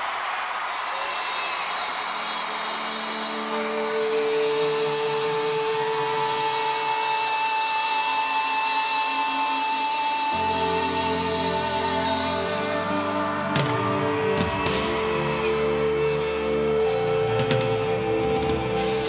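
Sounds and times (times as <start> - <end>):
high wavering tone: 3.6 - 19.0.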